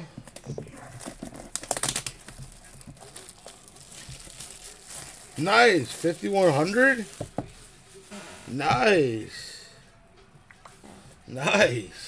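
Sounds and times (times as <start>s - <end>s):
plastic shrink wrap crinkling: 0.3s - 8.6s.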